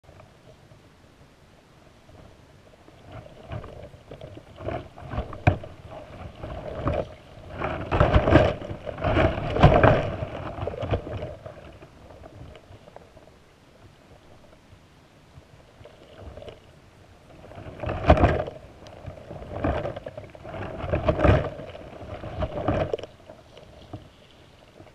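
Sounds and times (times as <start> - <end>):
underwater rushing water: 0.0 - 24.9.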